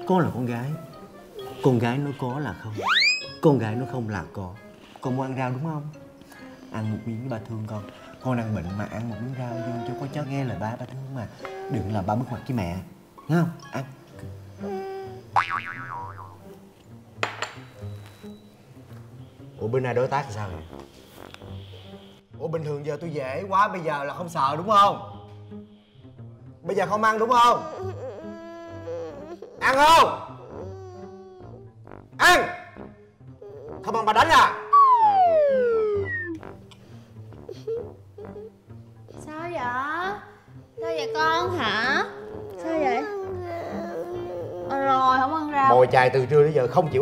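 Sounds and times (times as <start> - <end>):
comic background music: 0.0 - 47.0
cartoon boing: 15.4 - 16.4, 34.7 - 36.4
girl whimpering cries: 27.5 - 31.6, 40.8 - 45.5
girl wailing: 34.8 - 36.4.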